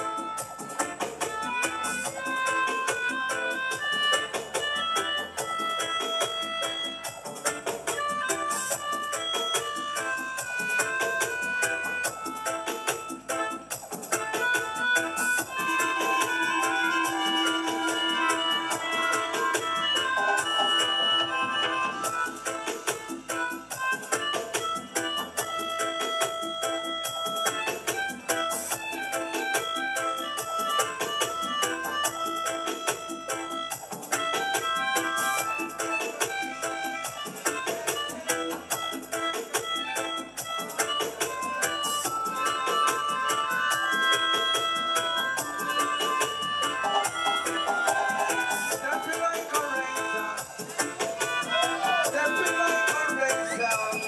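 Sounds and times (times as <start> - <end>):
dub reggae rhythm: 0.0 - 54.0
melodica melody: 0.0 - 54.0.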